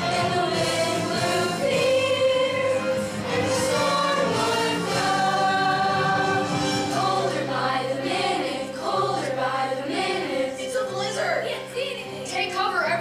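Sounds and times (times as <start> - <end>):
choir of young voices singing: 0.0 - 11.0
musical accompaniment: 0.0 - 13.0.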